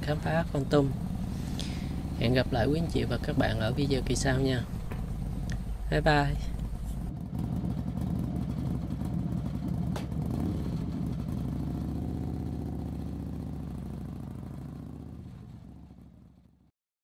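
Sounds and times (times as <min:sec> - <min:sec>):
motorbike engine running: 0:00.0 - 0:16.6.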